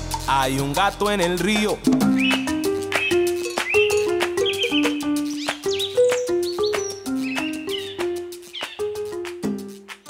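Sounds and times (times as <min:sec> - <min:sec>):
salsa band music: 0:00.0 - 0:10.0.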